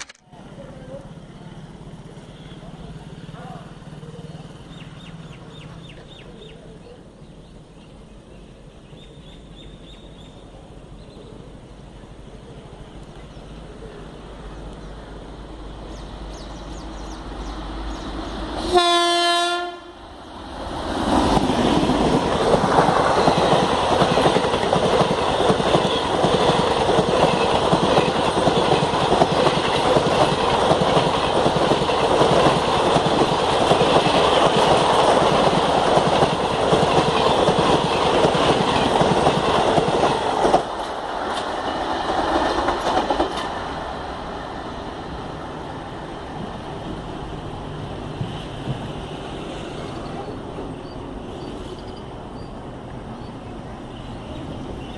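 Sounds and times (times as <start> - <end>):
train passing at speed: 0.3 - 54.9
train horn blast: 18.6 - 20.0.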